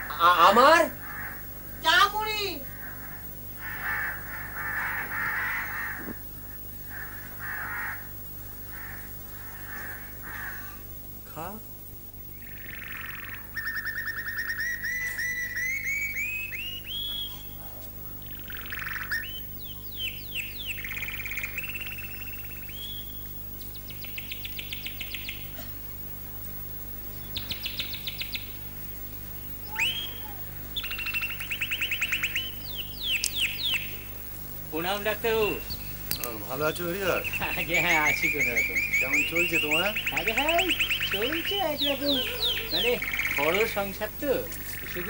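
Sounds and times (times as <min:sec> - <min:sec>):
songbird singing: 0:00.0 - 0:45.0
steady low hum: 0:00.0 - 0:45.0.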